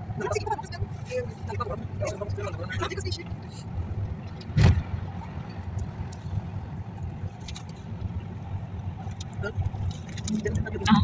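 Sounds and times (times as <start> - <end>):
road rumble inside vehicle: 0.0 - 11.0
sharp thump: 4.6 - 4.9.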